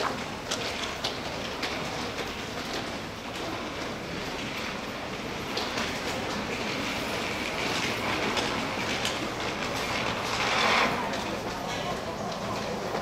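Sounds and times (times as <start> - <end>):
underground concourse background noise: 0.0 - 13.0.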